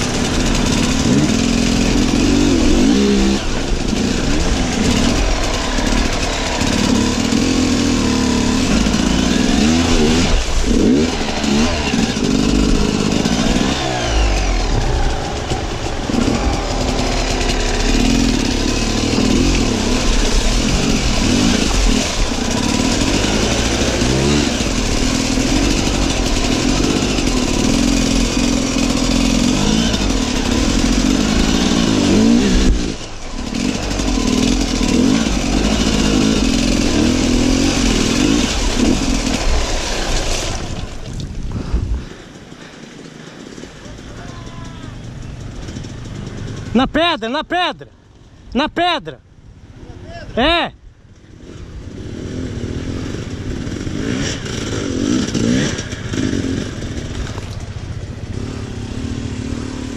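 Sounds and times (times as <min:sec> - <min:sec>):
water splashing from wheels: 0:00.0 - 0:46.7, 0:51.1 - 0:59.9
motorcycle engine revving: 0:00.0 - 0:48.7, 0:49.3 - 0:59.9.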